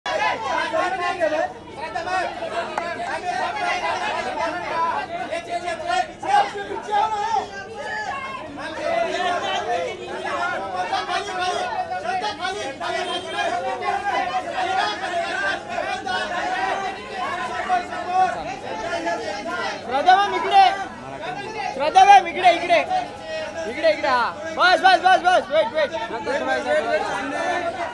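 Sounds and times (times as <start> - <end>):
babble of overlapping voices: 0.0 - 27.9.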